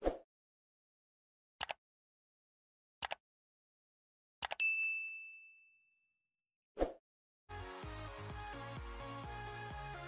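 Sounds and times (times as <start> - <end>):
high notification bell chime: 4.6 - 5.8.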